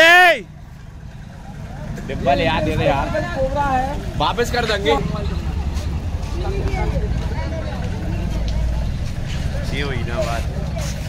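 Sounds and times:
crowd background: 0.0 - 11.0
low outdoor rumble: 0.0 - 11.0.

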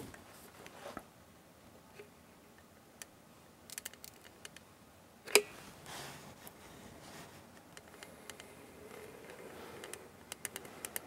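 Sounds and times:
adhesive tube ticks and clicks: 3.7 - 4.6, 9.3 - 11.0.

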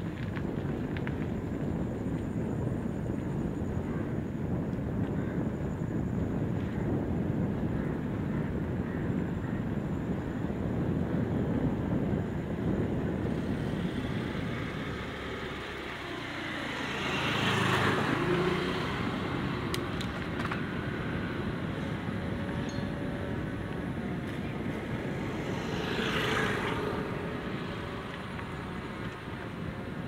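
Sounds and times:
bicycle rolling noise: 0.0 - 30.0
wind rumble: 0.0 - 30.0
motor scooter passing: 13.4 - 30.0.

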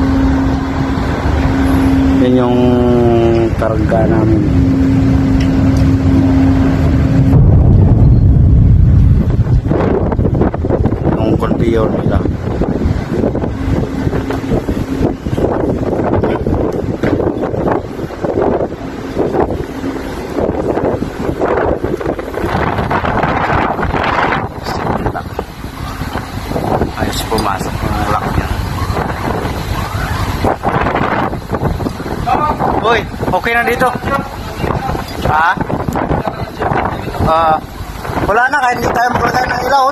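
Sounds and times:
deep machinery rumble: 0.0 - 39.9
wind buffeting microphone: 0.0 - 39.9.

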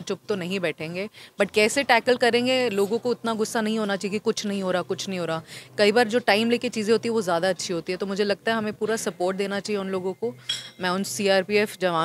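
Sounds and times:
woman speaking: 0.0 - 12.0
short high clink: 10.4 - 10.8.

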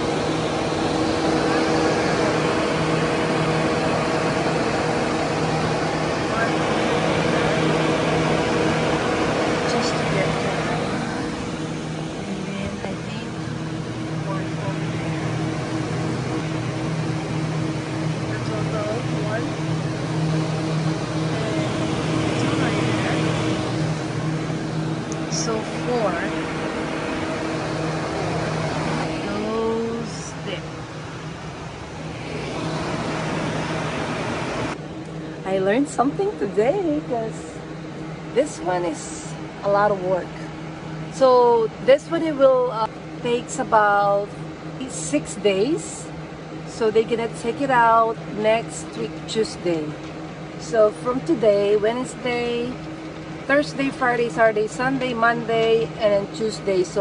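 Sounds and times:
low motor hum: 0.0 - 57.0.

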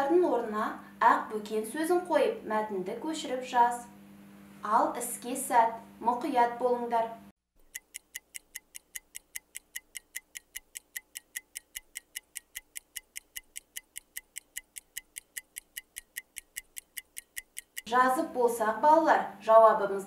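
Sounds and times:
timer ticking fast: 7.6 - 17.9.

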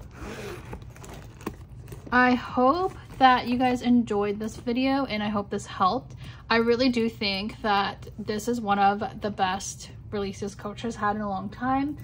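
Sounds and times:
zipper being unzipped: 0.0 - 2.2.

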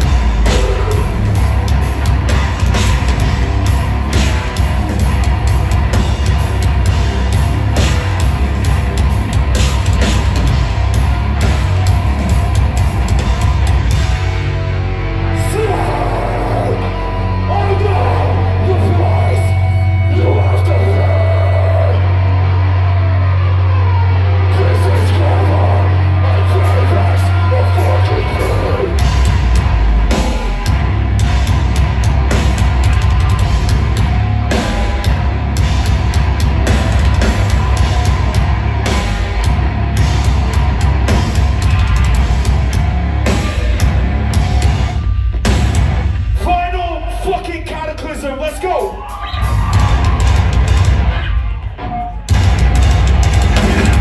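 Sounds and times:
heavy band playing live: 0.0 - 54.0.

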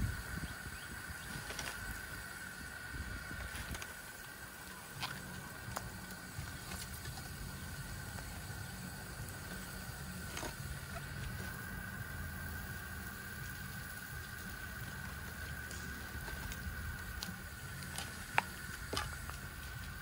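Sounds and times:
low fluttering rumble: 0.0 - 20.0.

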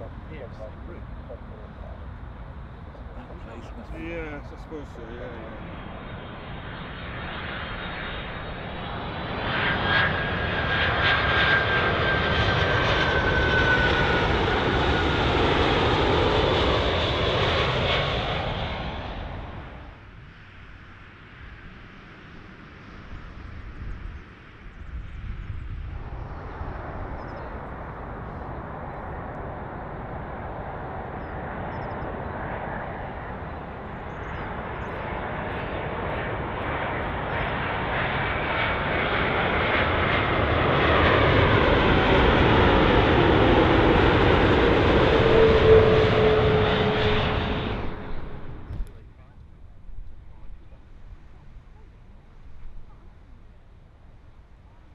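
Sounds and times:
steady jet engine sound: 0.0 - 20.5
jet engine whine falling in pitch: 0.0 - 53.5
jetliner passing overhead: 0.0 - 54.9.

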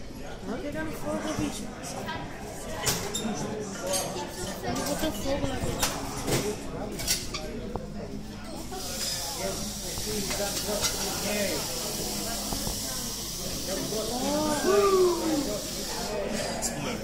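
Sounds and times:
faint chatter of onlookers: 0.0 - 17.0.

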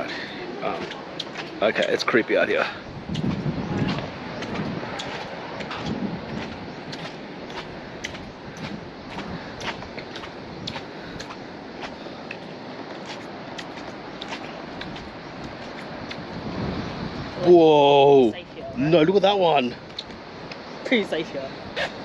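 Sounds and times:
steady background hiss: 4.0 - 22.0.

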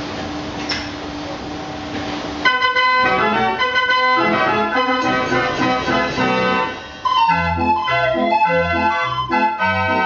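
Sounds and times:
street organ pipes playing: 2.4 - 10.0.

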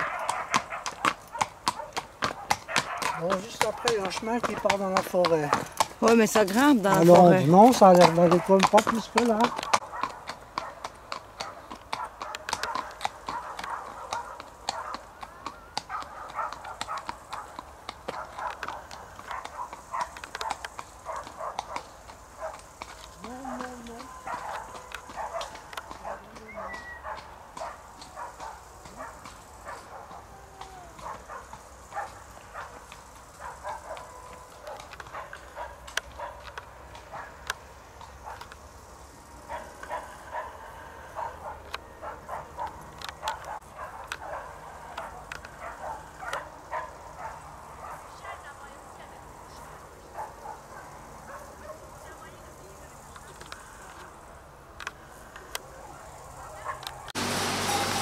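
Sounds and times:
footsteps on pavement: 0.0 - 38.6
horse hooves clopping on pavement: 0.0 - 40.6, 41.2 - 58.0.

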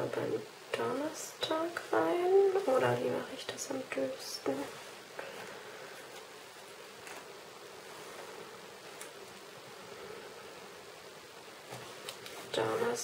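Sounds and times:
faint room noise hiss: 0.0 - 13.0.

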